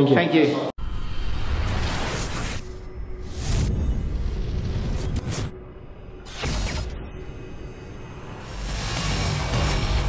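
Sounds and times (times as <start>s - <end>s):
whoosh: 0.8s - 9.3s
music: 6.1s - 10.0s.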